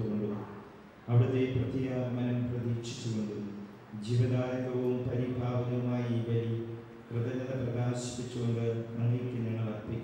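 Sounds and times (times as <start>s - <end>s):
man chanting a prayer: 1.1s - 10.0s.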